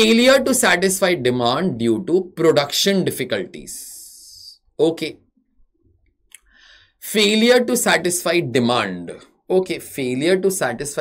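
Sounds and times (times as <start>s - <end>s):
man speaking: 0.0s - 5.2s, 7.0s - 11.0s
faint mouth click: 6.3s - 6.5s
short breath: 6.4s - 7.0s.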